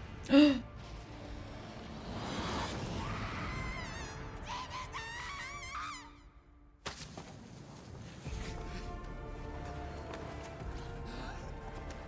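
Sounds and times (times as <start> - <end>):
music: 0.0 - 6.8, 8.2 - 12.0.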